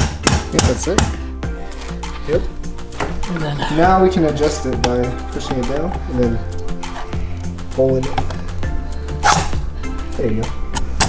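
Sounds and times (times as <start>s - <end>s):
music with a steady beat: 0.0s - 11.0s.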